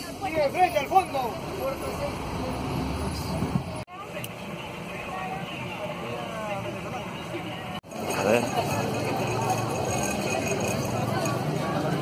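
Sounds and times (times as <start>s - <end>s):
faint voices: 0.0s - 12.0s
traffic rumble inside car: 0.0s - 12.0s.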